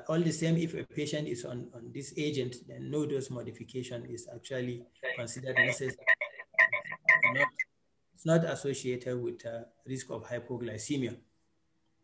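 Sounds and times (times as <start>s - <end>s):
man's voice breaking up robotically: 4.3s - 7.6s.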